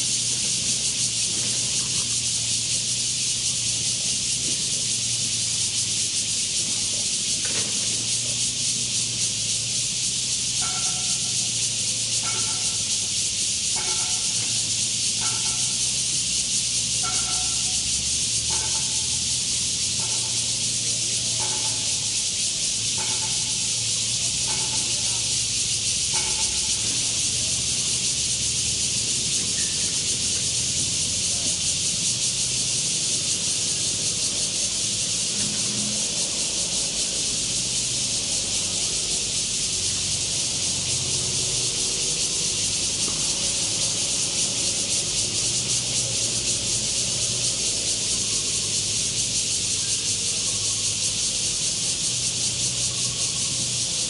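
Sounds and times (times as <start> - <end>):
high-pitched hiss: 0.0 - 54.0.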